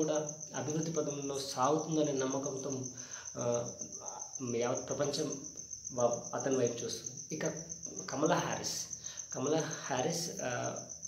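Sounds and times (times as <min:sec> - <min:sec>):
man speaking: 0:00.0 - 0:10.9.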